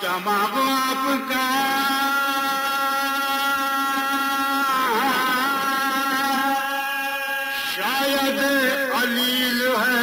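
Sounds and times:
man singing long chant note: 0:00.0 - 0:10.0.

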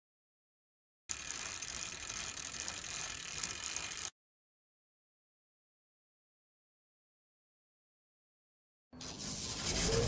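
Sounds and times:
ratchet-like gear clicking: 0:01.1 - 0:04.1.

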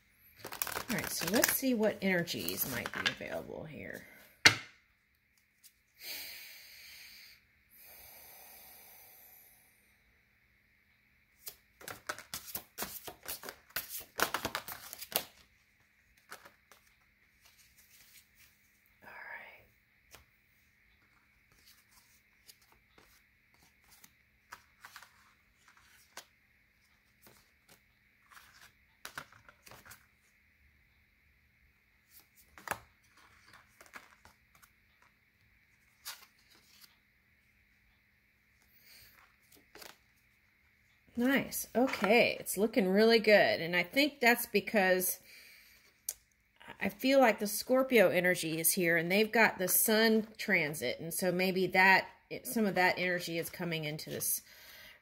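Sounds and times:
cards sliding and riffling: 0:00.4 - 0:01.8, 0:11.4 - 0:18.8, 0:21.0 - 0:30.1, 0:32.1 - 0:35.2, 0:35.8 - 0:37.0, 0:38.6 - 0:40.0
cards flicked and laid down: 0:27.2 - 0:30.0.

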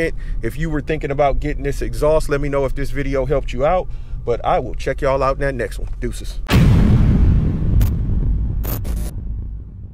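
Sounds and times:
deep boom rumble: 0:06.4 - 0:09.9
static glitch bursts: 0:08.6 - 0:09.1.

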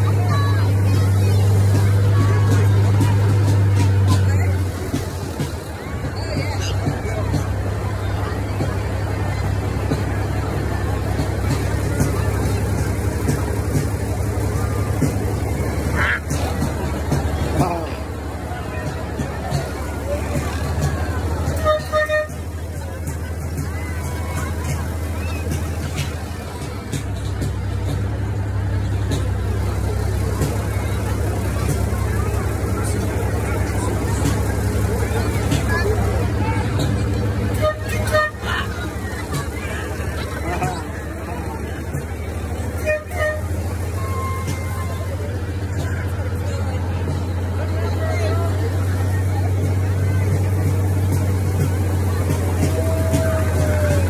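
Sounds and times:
crowd voices murmuring: 0:00.0 - 0:54.0
vehicle engine humming: 0:00.0 - 0:54.0
short horn toots: 0:21.5 - 0:22.6, 0:42.7 - 0:45.0.

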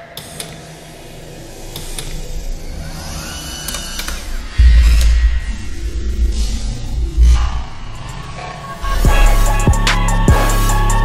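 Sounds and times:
sharp mechanical clicks: 0:00.0 - 0:05.3
sweeping effects: 0:00.0 - 0:11.0
building music: 0:02.1 - 0:11.0
strong low beat: 0:04.6 - 0:08.1, 0:08.8 - 0:11.0
heavy bass hit: 0:08.9 - 0:11.0.

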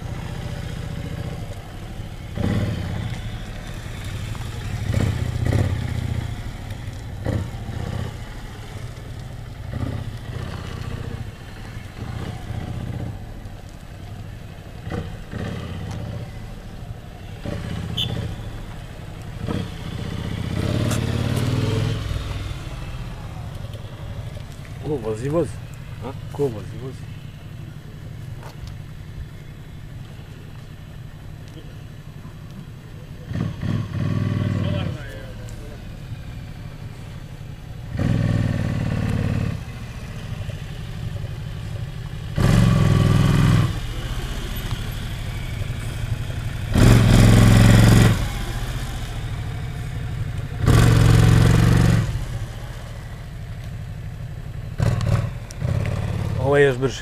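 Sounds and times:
motorcycle engine running: 0:00.0 - 0:57.0
motorcycle throttle bursts: 0:17.4 - 0:18.7, 0:37.8 - 0:57.0.

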